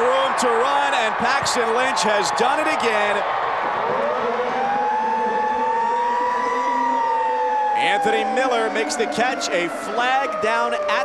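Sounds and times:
stadium siren wailing: 0.0s - 11.0s.

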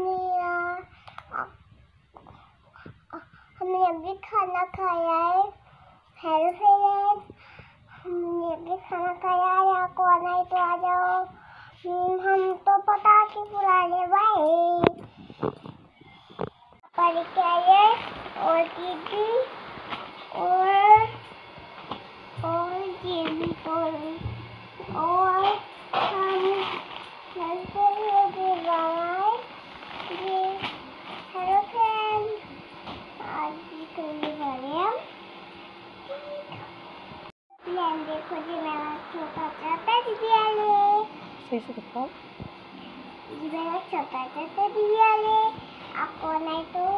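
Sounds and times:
girl singing slow tune: 0.0s - 1.6s, 2.2s - 19.6s, 20.2s - 21.5s, 22.3s - 32.6s, 33.2s - 35.1s, 37.6s - 41.2s, 43.3s - 46.9s.

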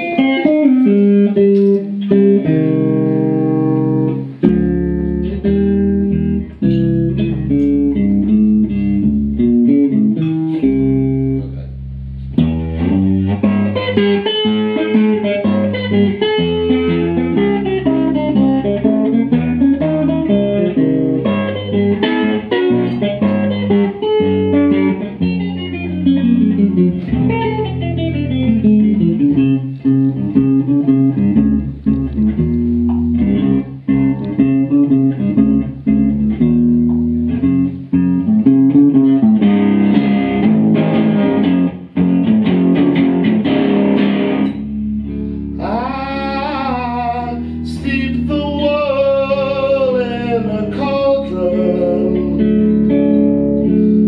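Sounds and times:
electric guitar solo: 0.0s - 54.0s.

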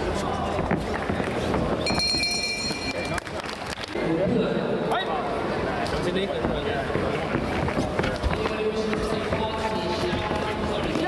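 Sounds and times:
shuffling footwork: 0.0s - 2.0s, 6.4s - 11.0s
high steady tone: 1.8s - 3.1s.

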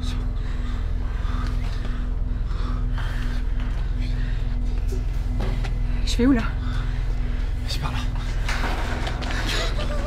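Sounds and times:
low steady drone: 0.0s - 10.0s.

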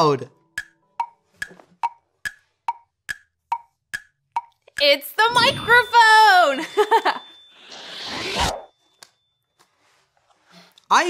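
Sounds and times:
hollow wooden ticking: 0.6s - 5.0s.

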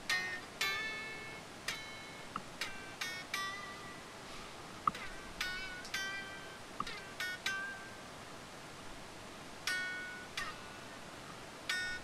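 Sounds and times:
unplugged electric guitar notes: 0.0s - 4.1s, 4.8s - 8.1s, 9.6s - 10.8s.

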